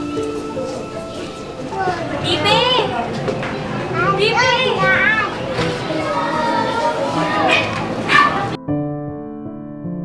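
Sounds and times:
soft piano music: 0.0 - 10.0
children's voices: 1.4 - 8.6.

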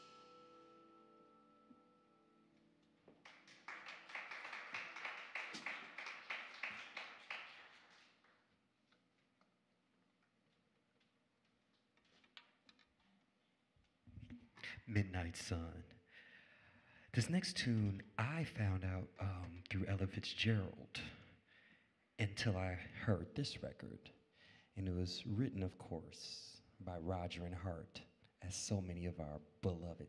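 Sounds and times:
audience applauding: 3.2 - 8.4.

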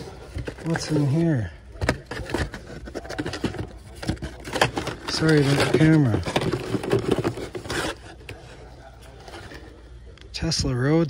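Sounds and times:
cardboard and plastic packs scraping: 0.0 - 9.8.

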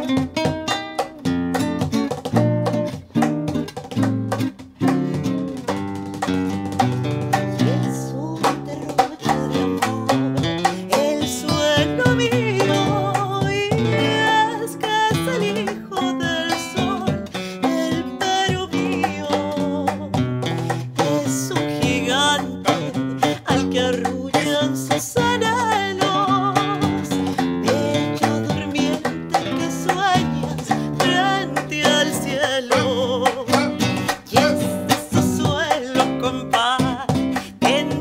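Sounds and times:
acoustic guitar plucked and strummed: 0.0 - 38.0
cajon hand-struck beat: 0.0 - 38.0
woman singing: 6.8 - 38.0.

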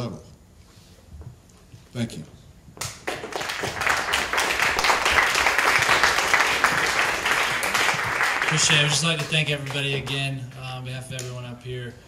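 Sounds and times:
audience applauding: 2.8 - 10.7.

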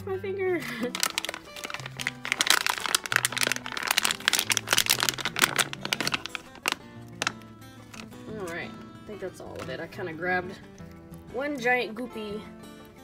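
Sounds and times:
plastic baggie crinkling: 0.8 - 8.6, 9.5 - 9.8.

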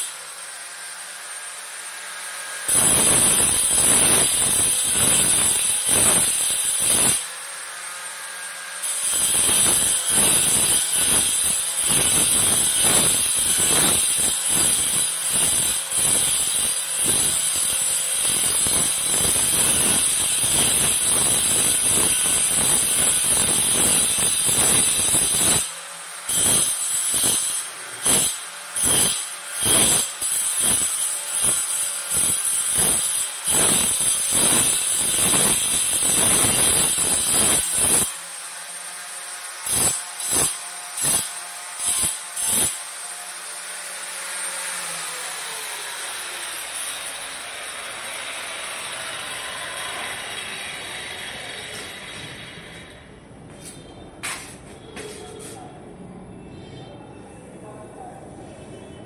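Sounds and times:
angle grinder grinding stone: 1.2 - 53.0.

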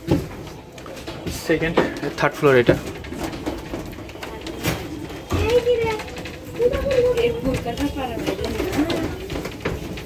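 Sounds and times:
people talking: 3.9 - 10.0.

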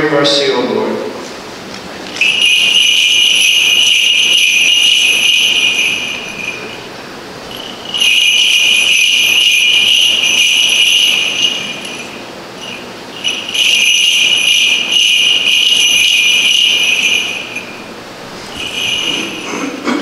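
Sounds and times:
censer bells jingling: 2.0 - 19.9.

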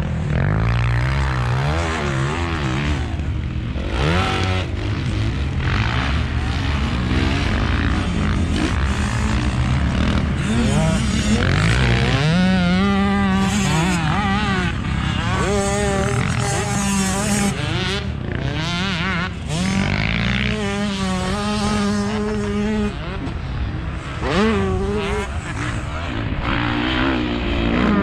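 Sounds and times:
motocross bike engines revving: 0.0 - 28.0.

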